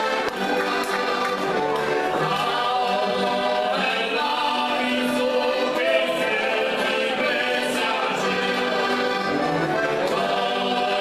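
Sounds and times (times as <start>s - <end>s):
button accordions playing folk tune: 0.0s - 11.0s
people singing in harmony: 0.0s - 11.0s.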